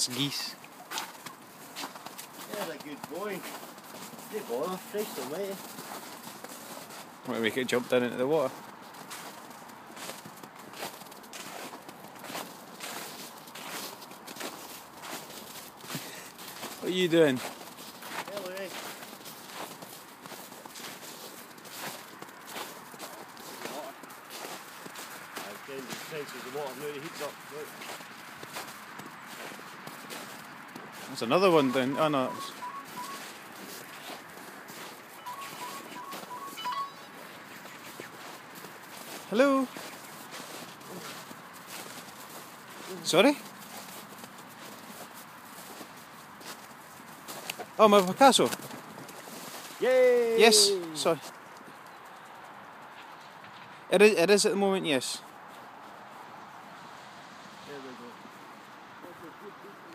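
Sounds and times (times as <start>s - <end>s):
footsteps in snow: 0.0s - 53.9s
short even beeps: 31.4s - 33.3s, 35.2s - 37.2s.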